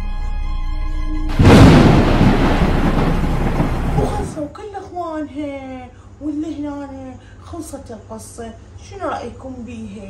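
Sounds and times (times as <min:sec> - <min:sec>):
thunderclap rumbling: 0:01.3 - 0:04.5.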